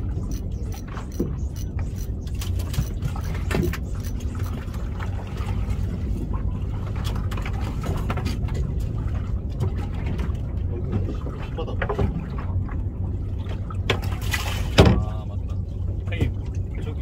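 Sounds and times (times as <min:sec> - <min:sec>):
boat engine low rumble: 0:00.0 - 0:17.0
water noise: 0:00.0 - 0:17.0.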